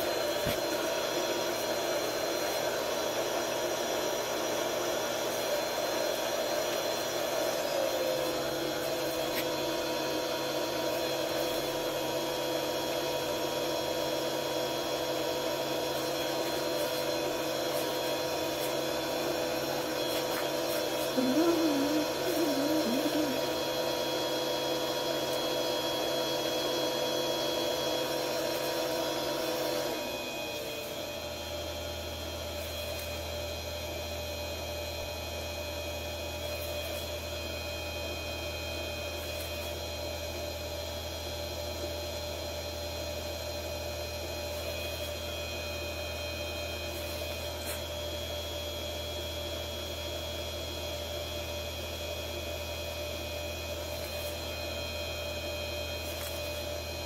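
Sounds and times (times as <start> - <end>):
lathe motor whine: 0.0 - 57.0.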